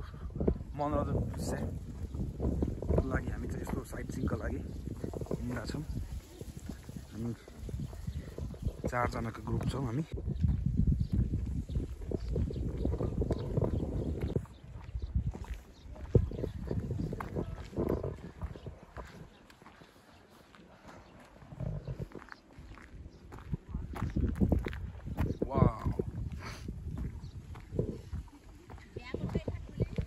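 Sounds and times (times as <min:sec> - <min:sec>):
wind buffeting microphone: 0:00.0 - 0:30.0
footsteps on paved road: 0:00.5 - 0:30.0.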